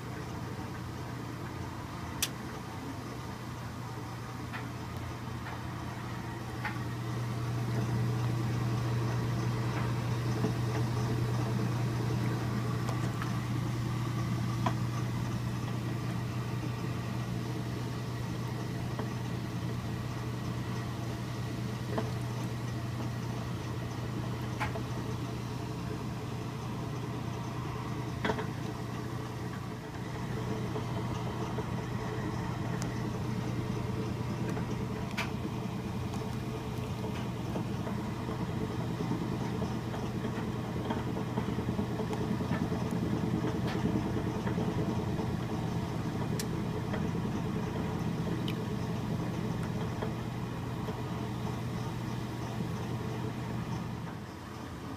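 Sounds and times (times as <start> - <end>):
washing machine motor hum: 0.0 - 54.9.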